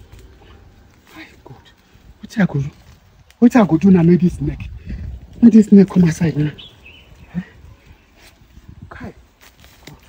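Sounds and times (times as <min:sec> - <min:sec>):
dry leaves crackling: 0:00.0 - 0:10.0.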